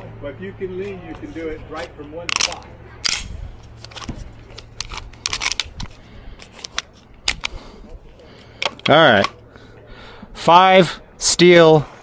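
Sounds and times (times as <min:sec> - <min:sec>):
pistol metallic clicks and rattles: 0:02.3 - 0:07.6, 0:08.6 - 0:09.4.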